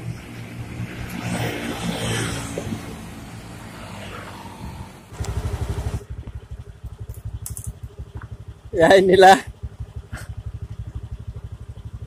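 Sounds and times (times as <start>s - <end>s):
vehicle engine running: 2.4s - 12.0s
fast choppy low throbbing: 5.2s - 12.0s.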